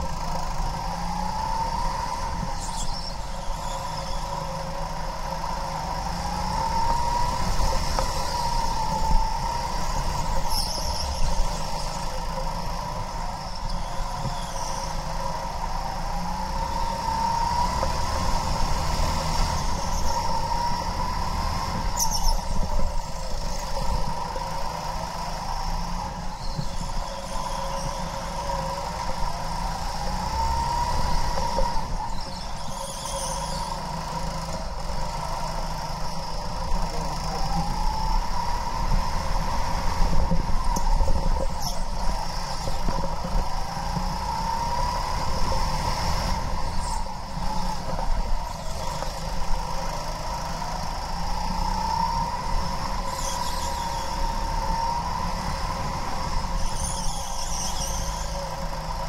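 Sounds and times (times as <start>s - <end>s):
go-kart engine revving: 0.0s - 59.0s
high squeals: 13.4s - 15.4s, 51.3s - 59.0s.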